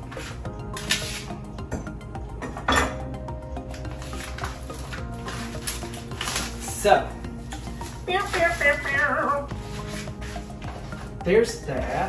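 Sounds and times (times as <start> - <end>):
background music: 0.0 - 12.0
kitchen handling sounds: 0.1 - 3.1.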